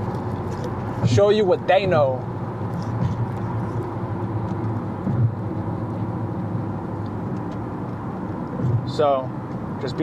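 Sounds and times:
car engine hum: 0.0 - 10.0
road noise: 0.0 - 10.0.

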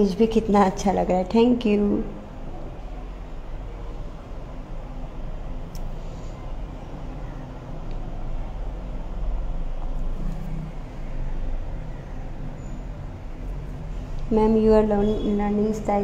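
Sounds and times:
low rumbling background noise: 0.0 - 16.0.

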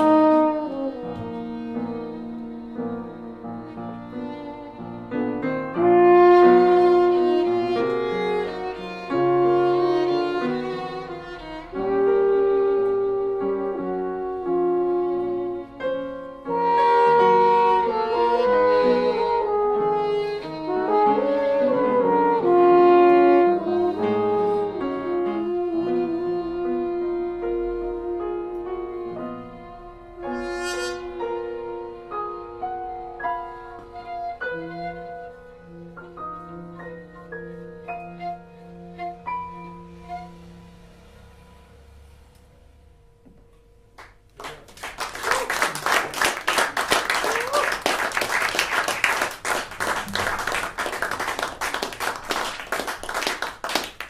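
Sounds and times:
french horn: 0.0 - 3.8, 5.4 - 33.0
violin: 0.0 - 42.5
piano chords: 0.0 - 54.0.

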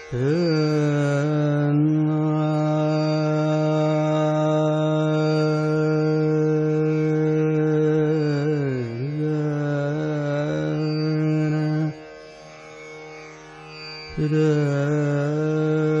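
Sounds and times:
man singing classical vocal: 0.0 - 12.0, 14.1 - 16.0
tanpura drone: 0.0 - 16.0.

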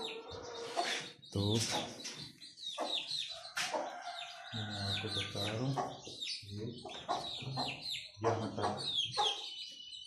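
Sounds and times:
chickens clucking: 0.0 - 10.0
chicks peeping: 0.0 - 10.0.

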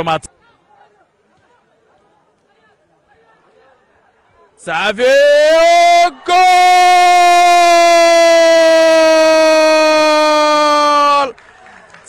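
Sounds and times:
commentator's long goal shout: 4.8 - 11.3.

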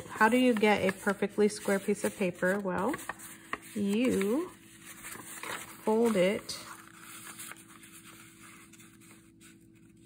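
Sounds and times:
low steady hum: 0.0 - 10.0
paper rustling being folded: 0.0 - 10.0.

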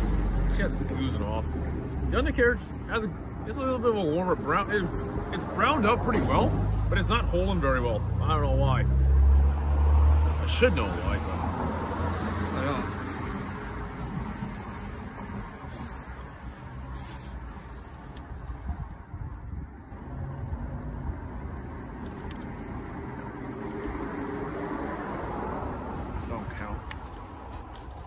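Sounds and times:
road traffic rumble: 0.0 - 28.0.

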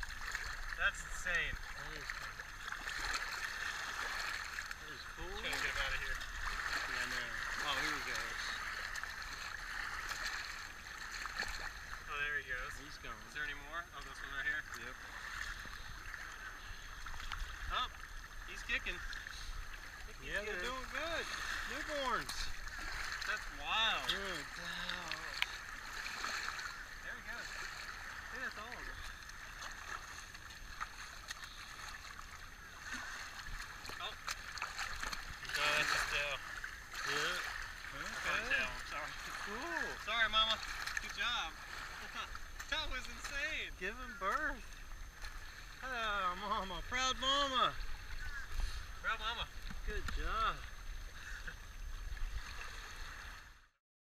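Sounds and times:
seawater washing over rocks: 0.0 - 50.8
short splashes: 0.0 - 53.5
feet sloshing through water: 0.0 - 53.6
small waves lapping shore: 0.0 - 53.7.

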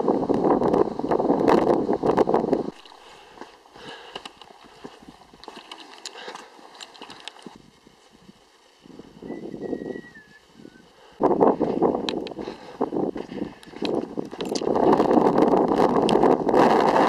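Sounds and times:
wind gusts on microphone: 0.0 - 2.8, 6.9 - 17.0
footsteps on loose stones: 2.5 - 9.8, 11.4 - 17.0.

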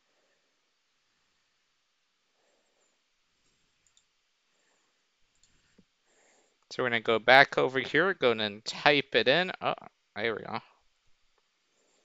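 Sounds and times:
computer mouse clicks: 3.8 - 4.1.

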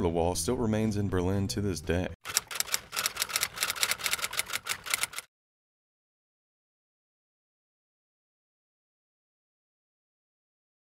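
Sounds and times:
typewriter keys striking: 2.3 - 5.3.

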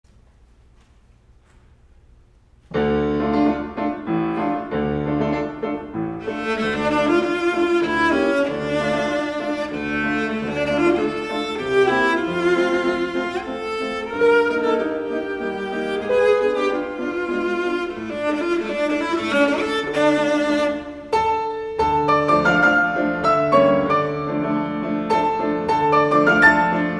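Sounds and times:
grand piano chords: 1.2 - 26.9
bowed cello: 2.9 - 26.9.

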